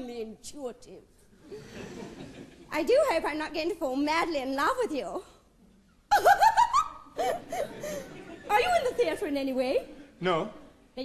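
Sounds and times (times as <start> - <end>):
woman laughing heartily: 6.1 - 8.9.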